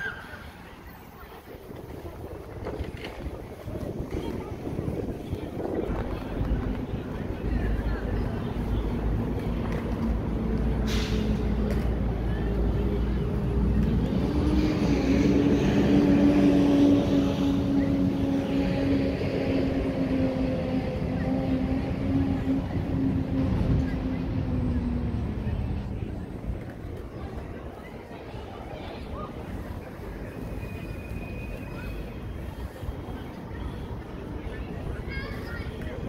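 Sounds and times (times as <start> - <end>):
vehicle engine droning: 4.8 - 27.4.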